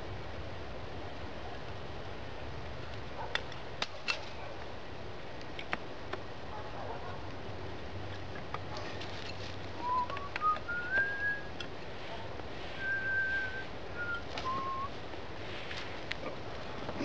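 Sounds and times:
faint clicks of sticks and cord: 2.6s - 4.7s, 5.3s - 6.3s, 7.2s - 17.0s
person whistling a tune: 9.8s - 11.5s, 12.8s - 14.9s.

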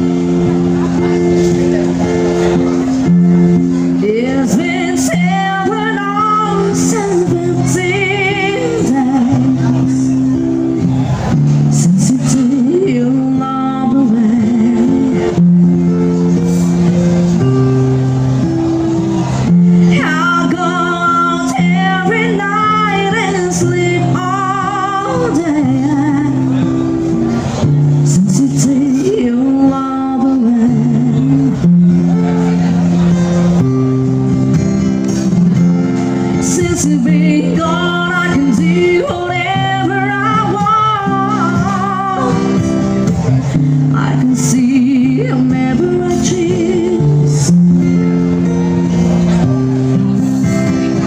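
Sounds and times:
acoustic guitar notes: 0.0s - 51.0s
person singing with vibrato: 3.7s - 10.7s, 11.5s - 16.8s, 19.8s - 32.2s, 36.3s - 48.5s.

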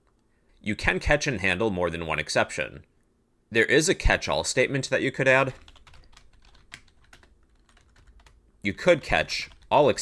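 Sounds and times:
typing on computer keyboard: 5.5s - 8.4s, 9.0s - 9.8s.

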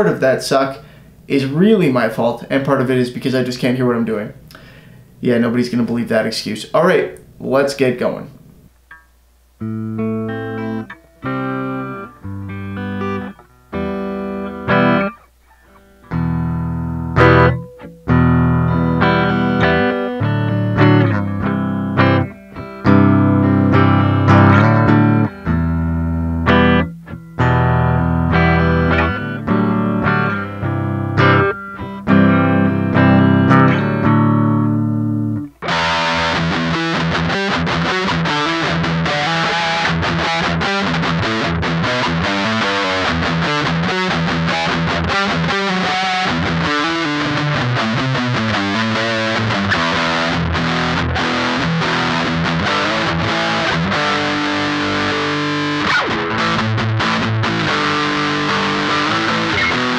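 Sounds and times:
electric guitar through amplifier: 7.0s - 59.9s.

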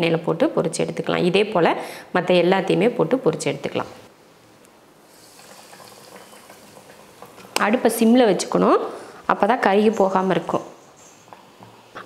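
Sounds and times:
chicken sizzling in hot oil: 5.1s - 7.6s.

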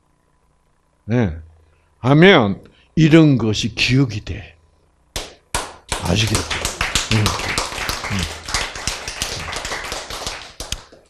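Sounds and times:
audience clapping: 5.2s - 11.0s.

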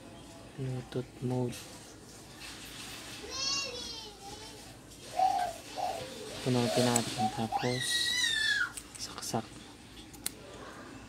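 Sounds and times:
faint high-pitched voice: 3.1s - 8.7s.

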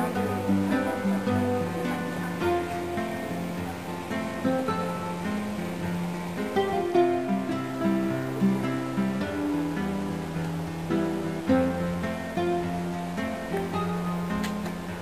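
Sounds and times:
acoustic guitar melody: 0.0s - 15.0s.

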